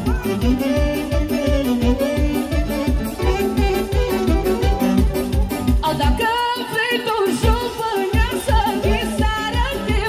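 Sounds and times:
bass drum beat: 0:00.0 - 0:06.2, 0:07.4 - 0:10.0
keyboard backing: 0:00.0 - 0:10.0
woman singing: 0:05.8 - 0:10.0.

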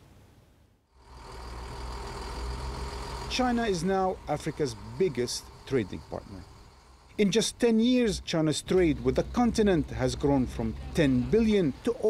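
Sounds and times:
diesel truck engine running: 0:01.0 - 0:12.0.

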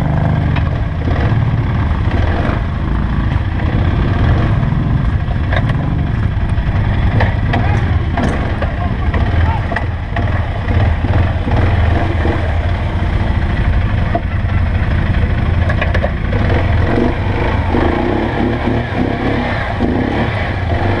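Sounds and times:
atv engine running: 0:00.0 - 0:21.0.

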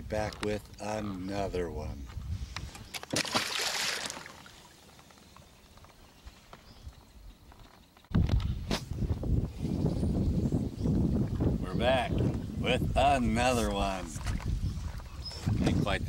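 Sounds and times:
wind rumble on microphone: 0:00.0 - 0:03.0, 0:08.1 - 0:16.0
fish splashing into water: 0:02.9 - 0:04.6.

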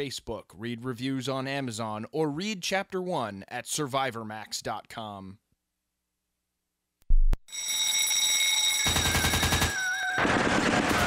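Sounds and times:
ringing alarm bell: 0:07.5 - 0:10.3
machine-gun fire: 0:08.8 - 0:11.0.

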